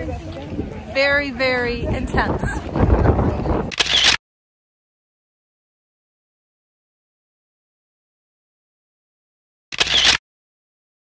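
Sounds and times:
crowd walking: 0.0s - 3.7s
wind rumbling on microphone: 0.0s - 4.2s.

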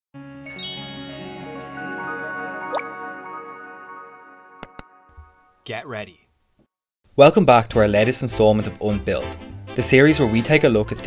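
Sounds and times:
chime-like jingle notes: 0.4s - 5.6s.

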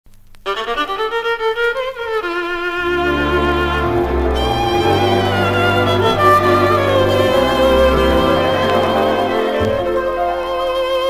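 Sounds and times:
violin melody with accompaniment: 0.5s - 11.0s.

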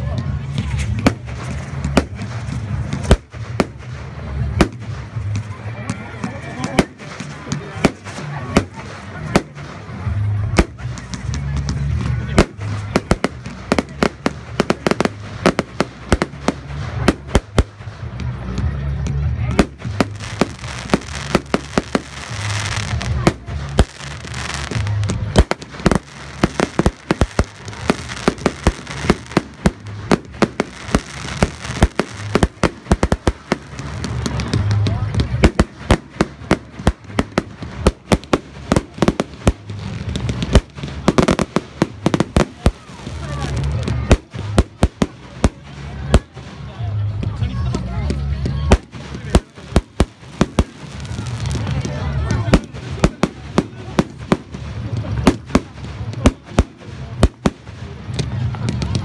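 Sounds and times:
fireworks bangs and crackles: 0.0s - 59.0s.

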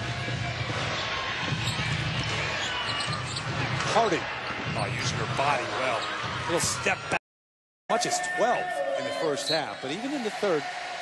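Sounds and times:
arena crowd noise: 0.0s - 7.2s, 7.9s - 11.0s.

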